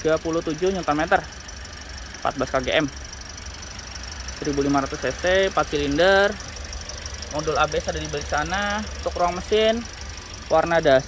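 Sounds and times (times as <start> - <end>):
car engine idling: 0.0 - 11.0
person speaking: 4.4 - 6.4, 7.3 - 9.9, 10.5 - 11.0.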